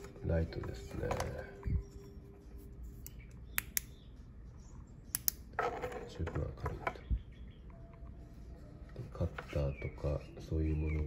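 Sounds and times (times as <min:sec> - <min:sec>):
flashlight button clicking: 0:03.0 - 0:03.9, 0:05.1 - 0:05.4.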